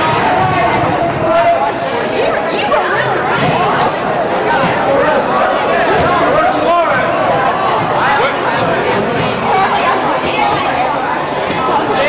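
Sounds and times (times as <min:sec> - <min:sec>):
teenagers chattering: 0:00.0 - 0:12.0.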